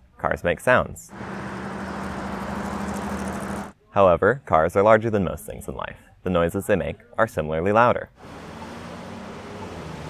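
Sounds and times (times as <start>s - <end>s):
low hum: 1.1s - 3.8s
road traffic passing: 1.1s - 3.8s, 8.2s - 10.0s.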